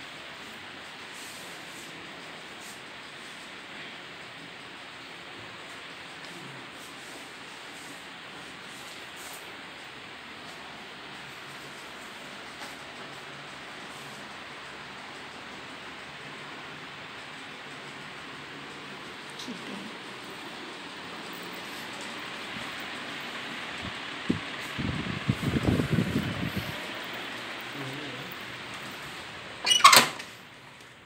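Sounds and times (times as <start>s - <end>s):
steady hiss: 0.0s - 31.0s.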